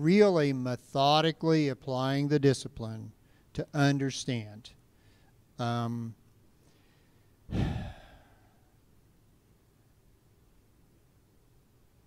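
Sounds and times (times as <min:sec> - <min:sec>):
man speaking: 0:05.6 - 0:06.2
man exhaling: 0:07.5 - 0:08.8.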